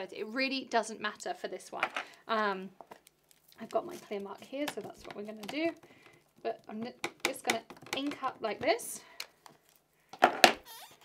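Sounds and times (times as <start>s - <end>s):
plastic clicks and knocks: 4.6s - 9.6s.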